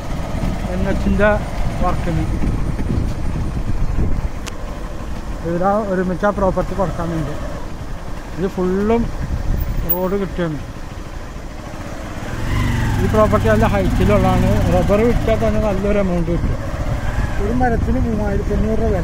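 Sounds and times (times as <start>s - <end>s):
vehicle engine hum: 0.0s - 19.0s
person talking: 9.8s - 10.6s.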